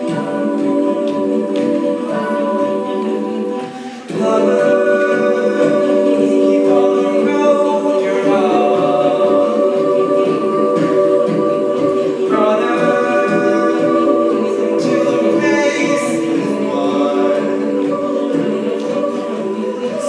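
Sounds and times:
choir singing a cappella: 0.0 - 20.0.

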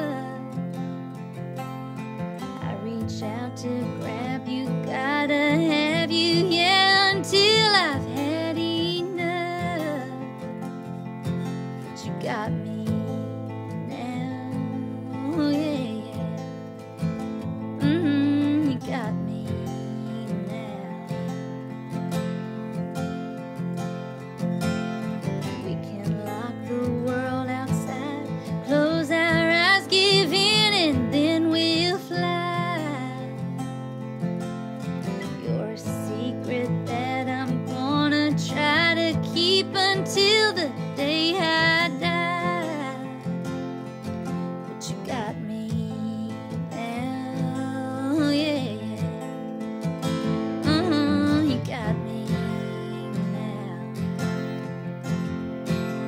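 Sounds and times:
woman singing with vibrato: 0.0 - 0.6, 2.6 - 10.5, 11.9 - 16.5, 17.8 - 21.3, 25.5 - 33.7, 35.2 - 43.6, 44.8 - 49.4, 50.4 - 54.3
acoustic guitar: 0.0 - 56.0.

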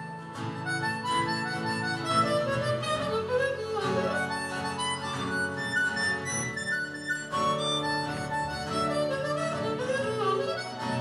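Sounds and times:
harmonica melody: 0.0 - 11.0
strummed acoustic guitar chords: 0.0 - 11.0.

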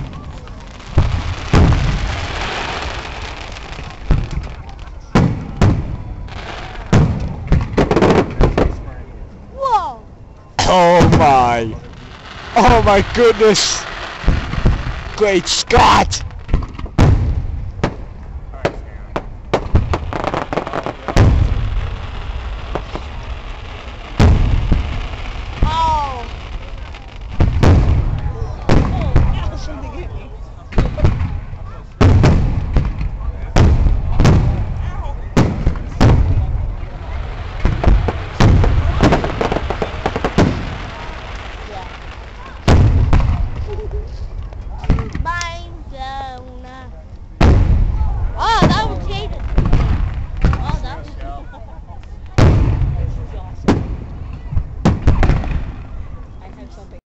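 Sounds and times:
fireworks bursting with bangs: 0.0 - 9.0, 10.6 - 29.9, 30.7 - 46.3, 47.4 - 51.3, 52.0 - 56.7
fireworks crackling: 0.0 - 9.7, 10.6 - 51.4, 52.0 - 57.0.

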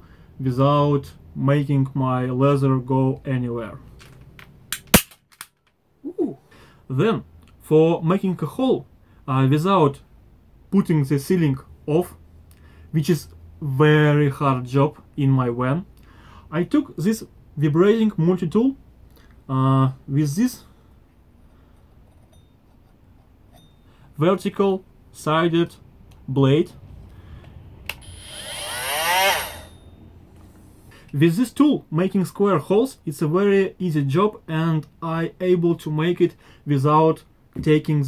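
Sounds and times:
staple gun snap: 4.7 - 5.6
faint metal tool clinks: 22.1 - 22.9, 23.5 - 23.9.

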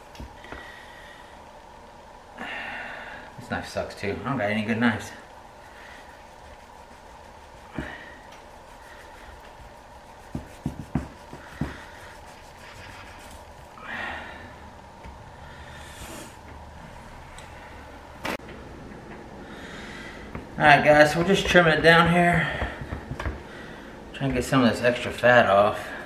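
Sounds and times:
steady low hum: 0.0 - 26.0
person breathing: 0.4 - 1.5, 2.4 - 3.4, 5.6 - 6.2, 7.6 - 9.4, 11.3 - 12.8, 13.7 - 16.5, 19.3 - 20.6, 22.3 - 24.1
knife knocking on wooden board: 22.5 - 23.4.

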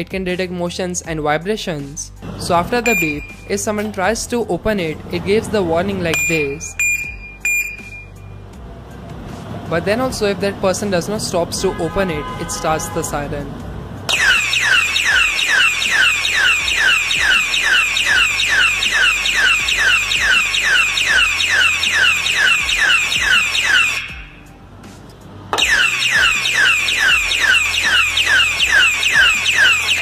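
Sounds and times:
alarm siren wailing: 2.8 - 3.4, 14.1 - 24.5, 25.6 - 30.0.

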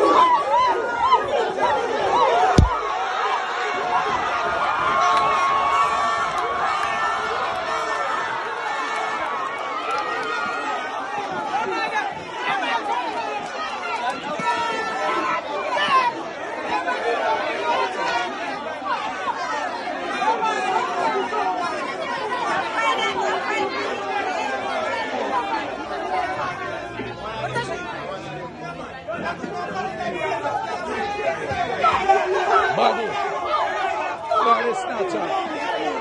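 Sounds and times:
crowd chatter: 0.0 - 36.0.

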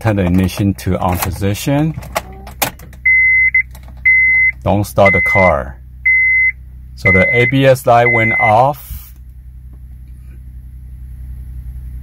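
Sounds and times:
ignition key clicks: 0.1 - 4.7
dashboard warning chime beeping: 2.2 - 8.7.

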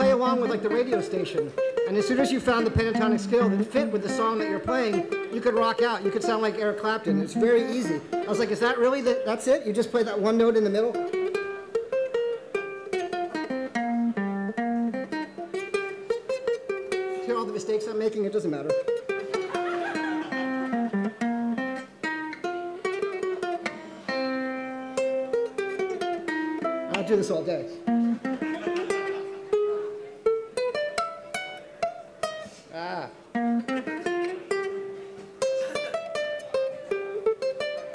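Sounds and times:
ukulele picked melody: 0.0 - 37.9.

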